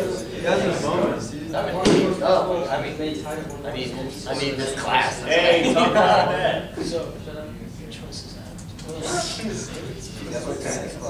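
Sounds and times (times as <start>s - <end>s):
students talking: 0.0s - 11.0s
sharp bang: 1.8s - 2.3s.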